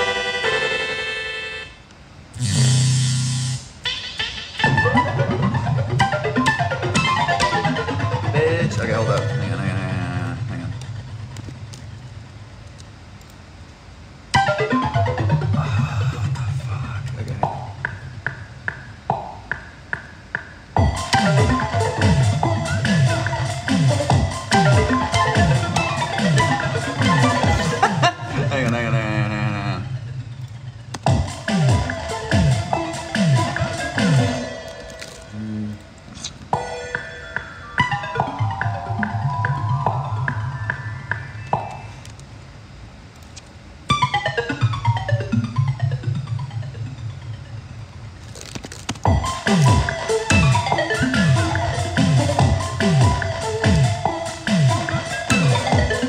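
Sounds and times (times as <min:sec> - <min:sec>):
synthesizer melody: 0:00.0 - 0:01.8, 0:03.4 - 0:11.2, 0:14.4 - 0:19.6, 0:20.8 - 0:42.1, 0:43.9 - 0:56.0
drum machine hits: 0:17.4 - 0:27.9, 0:31.0 - 0:34.5.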